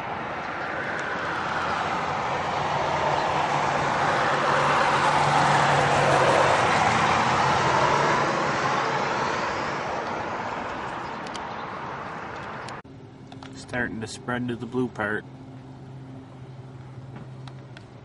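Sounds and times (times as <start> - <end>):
vehicle passing by: 0.0 - 18.0.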